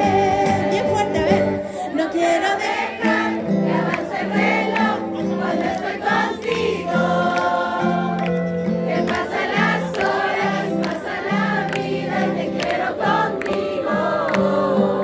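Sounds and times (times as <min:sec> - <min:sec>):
live band pop ballad: 0:00.0 - 0:01.8.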